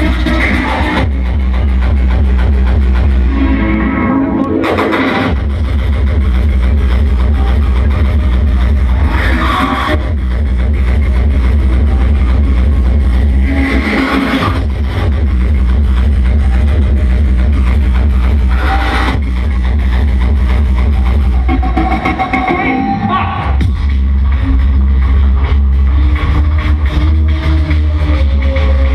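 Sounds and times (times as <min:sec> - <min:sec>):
heavy continuous bass: 0:00.0 - 0:28.9
loud hardcore electronic music: 0:00.0 - 0:28.9.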